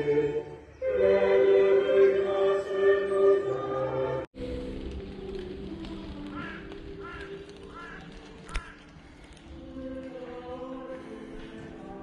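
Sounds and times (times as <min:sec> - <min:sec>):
bird calling: 0:06.1 - 0:09.0.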